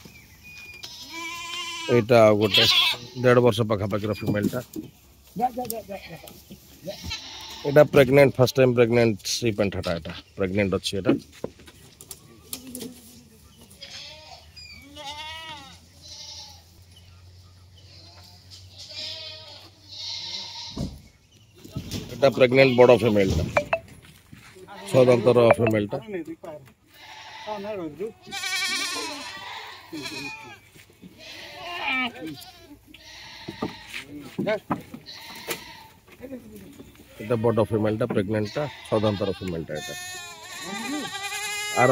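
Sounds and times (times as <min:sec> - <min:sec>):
goats bleating: 0:00.8 - 0:03.6, 0:05.7 - 0:08.9, 0:13.7 - 0:16.7, 0:17.8 - 0:20.8, 0:22.4 - 0:23.8, 0:24.7 - 0:26.0, 0:26.8 - 0:34.2, 0:35.0 - 0:36.0, 0:37.0 - 0:41.9.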